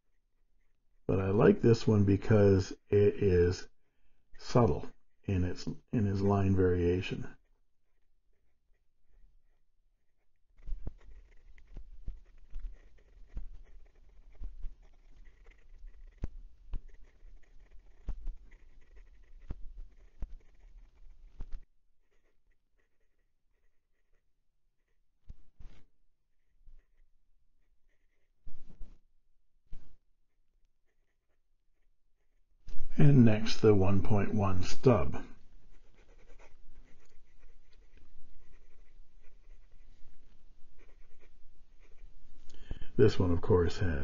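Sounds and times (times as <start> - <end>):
pen nib scratching on paper: 4.3 - 29.0, 29.7 - 43.9.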